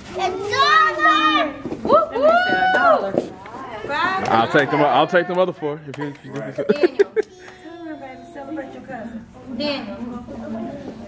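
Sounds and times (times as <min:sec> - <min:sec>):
children calling out: 0:00.2 - 0:03.0.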